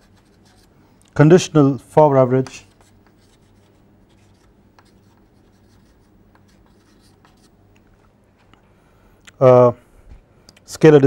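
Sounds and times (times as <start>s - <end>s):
chalk scratching on chalkboard: 0.0s - 0.7s, 2.5s - 7.5s
steady low hum: 0.0s - 11.0s
chalk taps: 2.4s - 7.5s.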